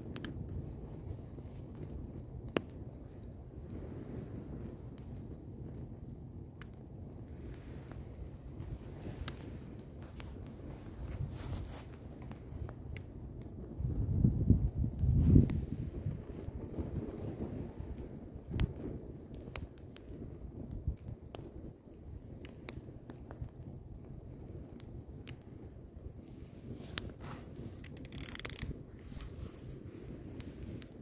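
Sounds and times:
campfire crackles and pops: 0.0 - 31.0
low rushing fire rumble: 0.0 - 31.0.

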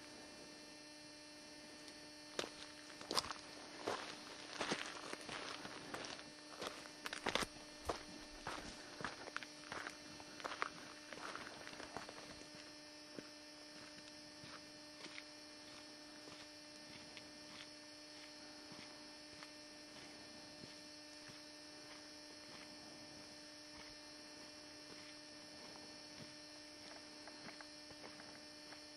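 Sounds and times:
faint electrical hum and hiss: 0.0 - 28.9.

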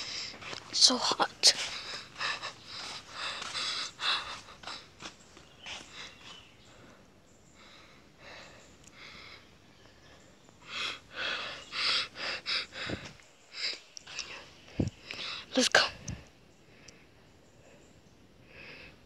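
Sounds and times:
person breathing hard: 0.0 - 0.6, 1.6 - 9.6, 10.2 - 19.0.

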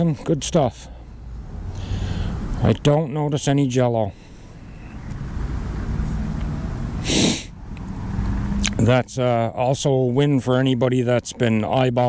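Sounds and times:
breathy rush of noise: 0.8 - 2.6, 4.1 - 8.6.

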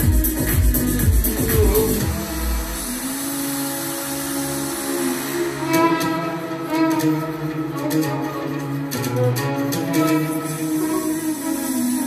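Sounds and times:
deep house backing track: 0.0 - 12.0
violin: 1.6 - 12.0.

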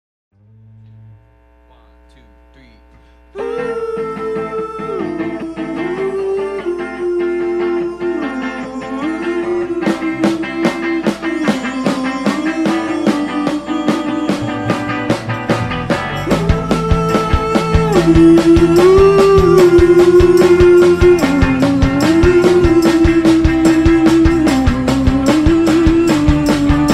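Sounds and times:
amplifier hum: 0.4 - 7.9
electric guitars: 3.0 - 26.9
keyboard melody: 3.4 - 26.9
drums beating: 9.1 - 26.9.

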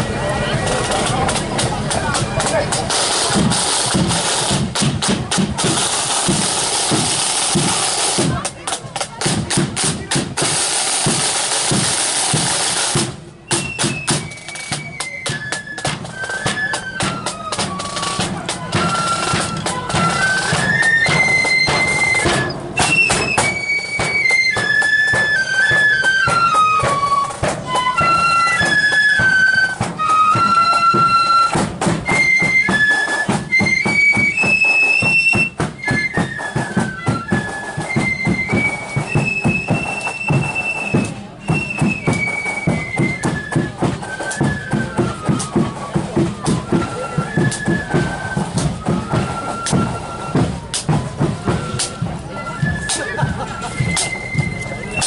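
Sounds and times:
flutes playing melody: 0.0 - 55.0
side drums beating: 0.0 - 55.0.

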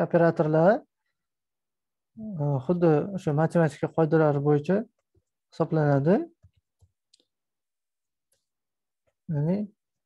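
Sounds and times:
man speaking: 2.2 - 4.9.

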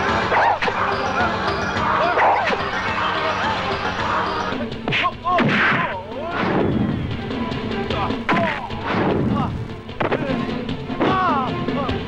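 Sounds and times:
background music: 0.0 - 12.0
sharp fight hits: 4.9 - 7.0.

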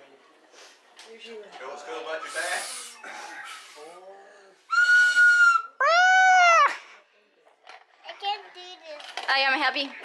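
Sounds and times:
young child squealing: 5.4 - 6.8.

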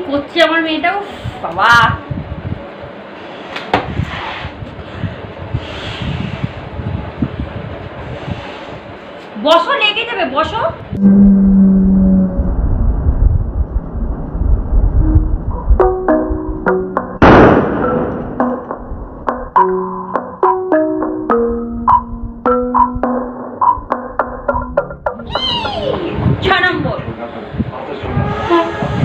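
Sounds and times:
breath blowing into balloon: 3.2 - 6.7
bouncy background music: 18.0 - 26.1.

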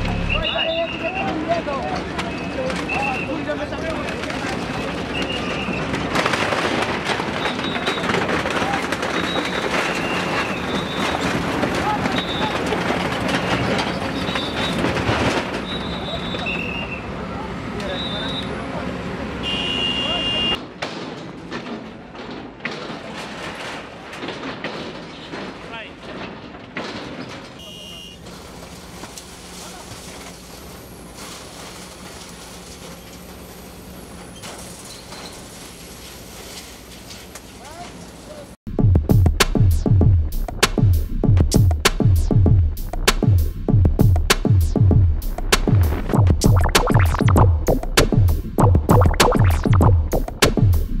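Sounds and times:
excavator diesel engine: 0.0 - 6.2
rubble and sheet metal clatter: 0.0 - 16.6, 20.6 - 38.3
excavator engine rumble: 0.0 - 19.4, 25.6 - 38.8
falling bricks and debris: 0.1 - 16.2, 20.6 - 33.7.

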